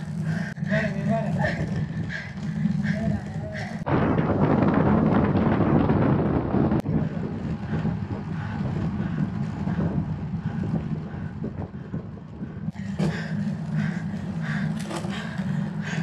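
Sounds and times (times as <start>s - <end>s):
road noise: 0.0s - 16.0s
wind rushing over microphone: 0.0s - 16.0s.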